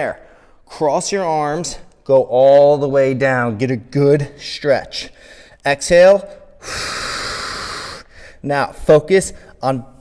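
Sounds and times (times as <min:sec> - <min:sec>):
man exhaling: 0:06.6 - 0:08.4.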